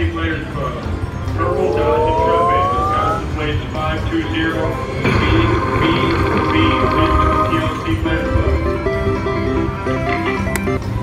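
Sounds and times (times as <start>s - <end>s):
slot machine music: 0.7s - 11.0s
electronic tone gliding upward: 1.3s - 8.6s.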